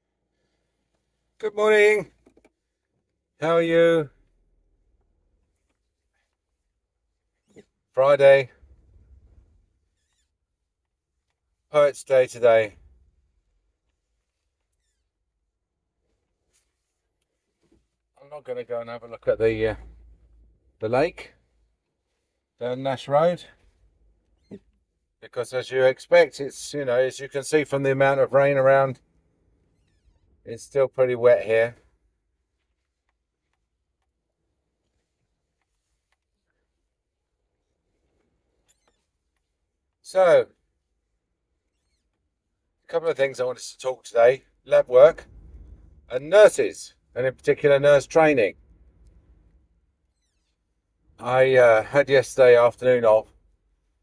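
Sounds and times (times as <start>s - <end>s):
faint low car rumble: 2.1s - 14.6s, 15.2s - 34.0s, 42.4s - 54.0s.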